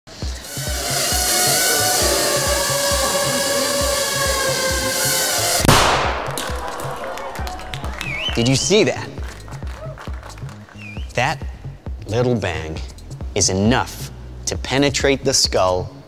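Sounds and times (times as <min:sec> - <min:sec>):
bright hissing wash: 0:00.2 - 0:06.0
sharp explosive bang: 0:05.6 - 0:06.8.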